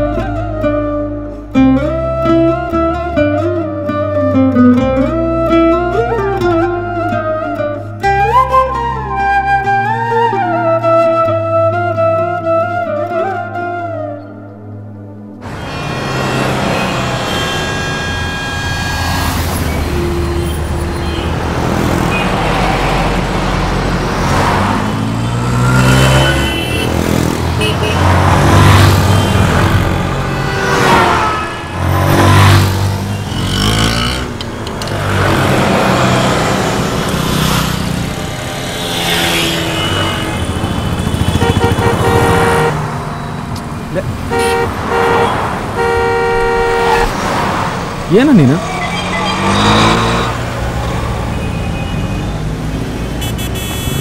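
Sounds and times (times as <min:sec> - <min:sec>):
vehicle horns honking: 0:15.4 - 0:23.2, 0:25.1 - 0:34.4, 0:35.0 - 0:47.4, 0:48.1 - 0:54.0
vehicle engines running: 0:15.4 - 0:54.0.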